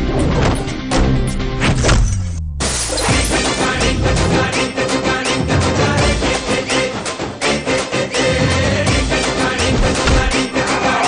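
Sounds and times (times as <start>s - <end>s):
action trailer music: 0.0s - 11.0s.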